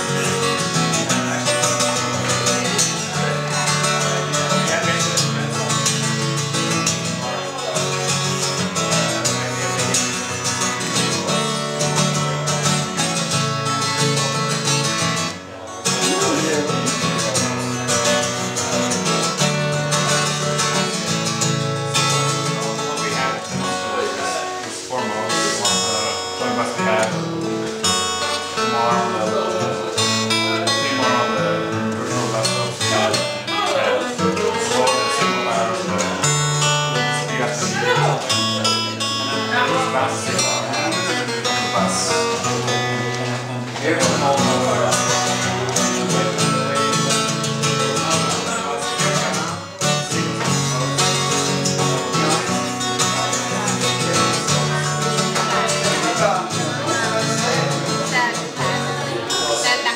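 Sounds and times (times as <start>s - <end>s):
fingerstyle acoustic guitar: 0.0s - 59.9s
people talking: 0.0s - 59.9s.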